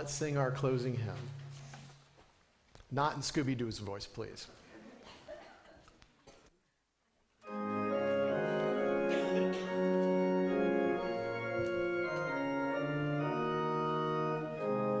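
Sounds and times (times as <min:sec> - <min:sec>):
organ playing hymn chords: 0:07.4 - 0:15.0.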